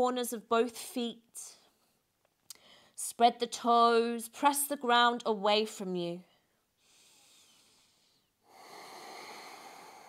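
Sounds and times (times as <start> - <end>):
woman breathing: 2.5 - 3.0, 6.4 - 10.0.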